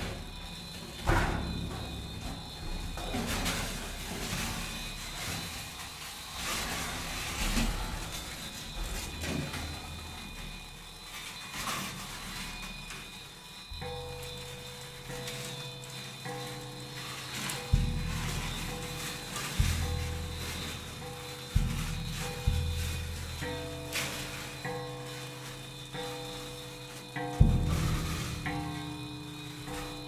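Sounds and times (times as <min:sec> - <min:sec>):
foil scraping on drumheads: 0:00.0 - 0:30.0.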